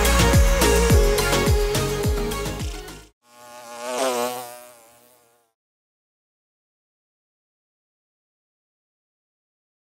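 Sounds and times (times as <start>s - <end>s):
buzzing insect-like hum: 0.0s - 5.6s.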